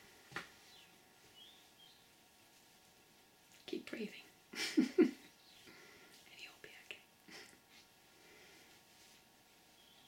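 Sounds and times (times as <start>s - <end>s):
woman's soft breathy laughter: 4.5s - 5.3s, 7.3s - 7.7s.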